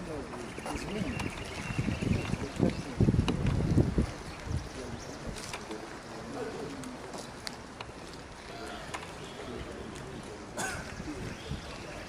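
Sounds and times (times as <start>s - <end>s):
wind buffeting microphone: 0.0s - 6.8s, 8.0s - 12.0s
faint distant voices: 0.0s - 12.0s.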